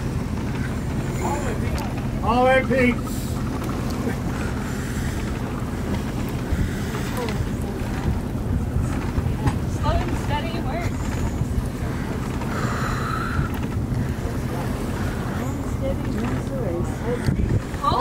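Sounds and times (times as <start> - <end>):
faint voices: 0.0 - 18.0
wind buffeting microphone: 0.0 - 18.0.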